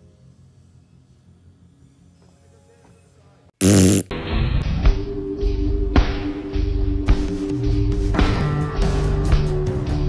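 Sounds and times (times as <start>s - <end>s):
faint soundtrack music: 0.0s - 10.0s
loud burst of buzzy noise: 3.6s - 4.1s.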